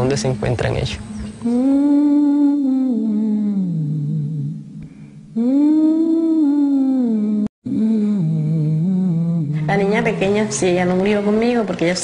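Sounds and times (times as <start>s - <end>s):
person humming a slow tune: 1.0s - 10.2s.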